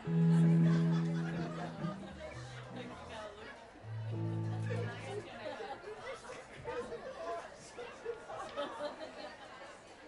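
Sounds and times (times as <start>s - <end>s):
low amplified instrument note: 0.0s - 5.3s
crowd chatter: 0.0s - 10.0s.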